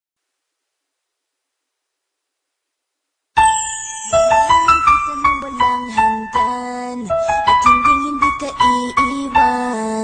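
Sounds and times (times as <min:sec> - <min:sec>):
keyboard chord ringing: 0:03.4 - 0:06.6.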